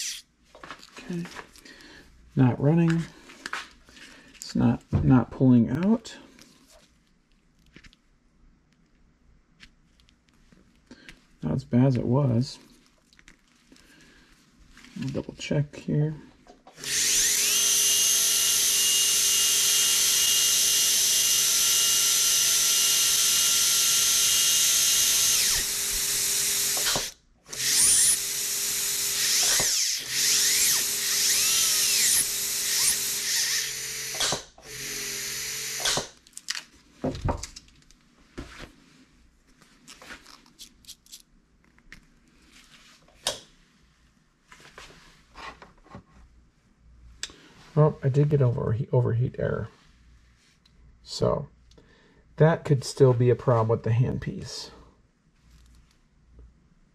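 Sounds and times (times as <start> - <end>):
dental drill whining: 0.0 - 0.2, 16.7 - 36.2.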